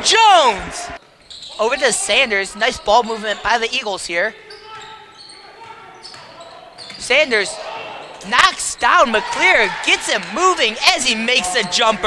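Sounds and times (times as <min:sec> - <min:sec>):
basketball dribbled in echoing gym: 0:04.4 - 0:07.2.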